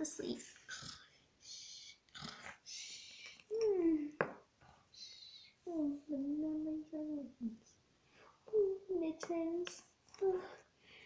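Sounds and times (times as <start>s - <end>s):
child pretend snoring: 2.1s - 2.7s.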